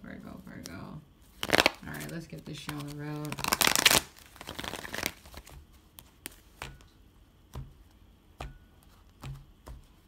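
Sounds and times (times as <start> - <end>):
cards being shuffled: 0.6 - 6.9.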